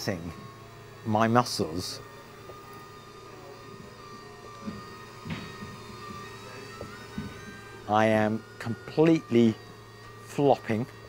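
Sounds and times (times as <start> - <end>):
wheelchair actuators humming: 0.0 - 11.0.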